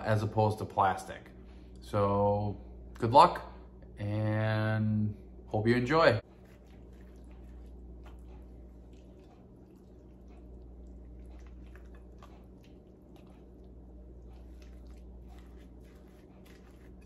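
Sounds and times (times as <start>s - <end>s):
spoon stirring thick dip: 6.2s - 17.0s.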